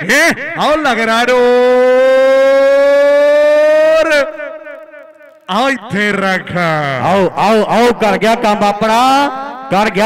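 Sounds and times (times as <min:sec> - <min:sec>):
man shouting over loudspeaker: 0:00.0 - 0:10.0.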